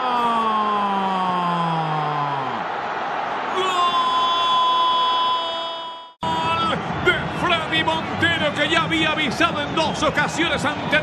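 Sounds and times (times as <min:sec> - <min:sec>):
crowd noise: 0:01.1 - 0:05.4, 0:06.2 - 0:11.0
man talking: 0:06.3 - 0:11.0.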